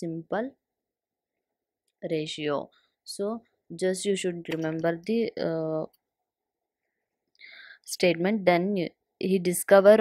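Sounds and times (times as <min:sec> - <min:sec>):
woman breathing faintly: 0:07.4 - 0:07.8.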